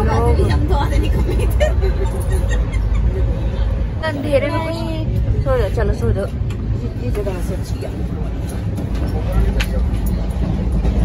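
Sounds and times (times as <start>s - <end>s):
train rumble: 0.0s - 11.0s.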